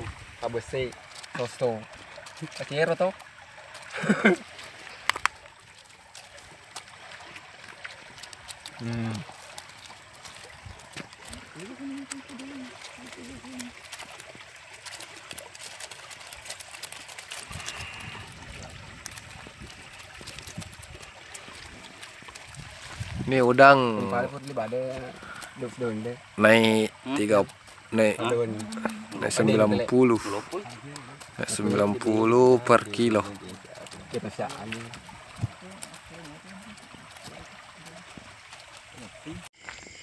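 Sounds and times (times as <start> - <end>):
shrimp crackling and splashing: 0.0 - 40.0
water trickling and dripping: 0.0 - 40.0.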